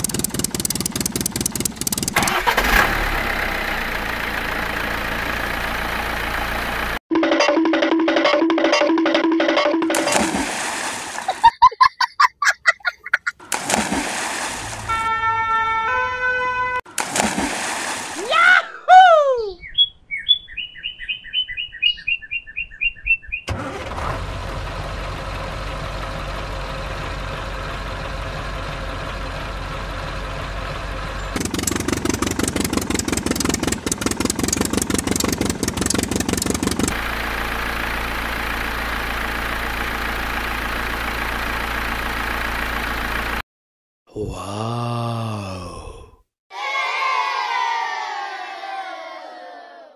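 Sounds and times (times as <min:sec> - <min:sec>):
truck engine running: 0:00.0 - 0:07.0, 0:23.5 - 0:43.4.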